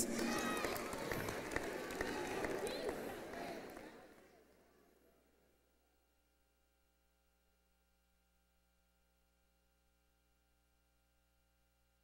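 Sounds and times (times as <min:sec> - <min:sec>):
congregation clapping: 0:00.0 - 0:04.3.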